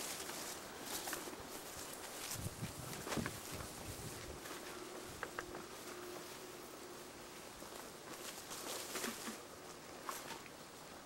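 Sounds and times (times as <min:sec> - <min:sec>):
leaves and branches rustling: 0:00.0 - 0:11.0.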